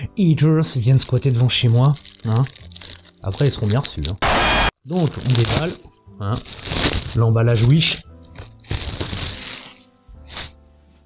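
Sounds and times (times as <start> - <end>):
soft background music: 0.0 - 4.2, 4.8 - 11.0
plastic bag crinkling: 0.9 - 4.2, 4.9 - 9.9.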